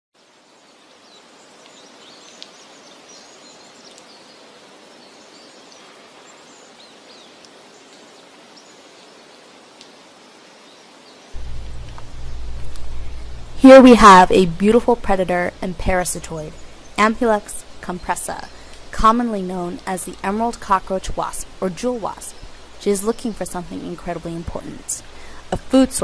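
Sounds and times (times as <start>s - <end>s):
steady background hiss: 0.2s - 26.0s
loud deep low drone: 11.4s - 14.6s.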